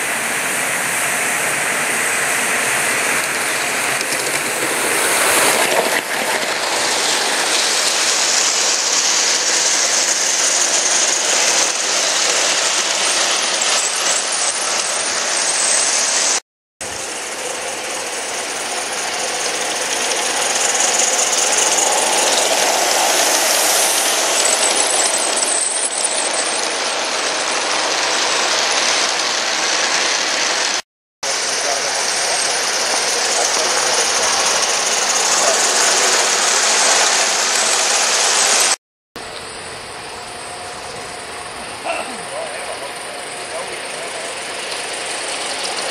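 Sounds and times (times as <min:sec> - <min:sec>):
model train wheels clattering: 0:03.1 - 0:16.4, 0:17.3 - 0:30.8, 0:31.5 - 0:38.8, 0:41.9 - 0:45.9.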